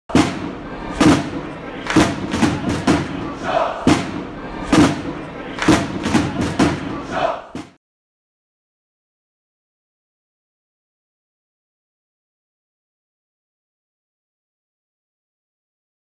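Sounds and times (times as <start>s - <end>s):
crowd chanting: 0.1s - 7.8s
loud heavy stomping hits: 0.1s - 7.8s.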